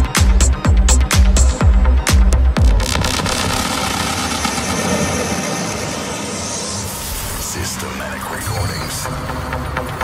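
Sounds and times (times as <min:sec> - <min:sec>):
rumbling electronic music breakdown: 0:00.0 - 0:08.0.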